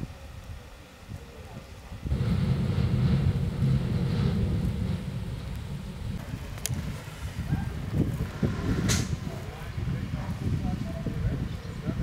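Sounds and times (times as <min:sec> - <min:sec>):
low rumble: 0:02.1 - 0:12.0.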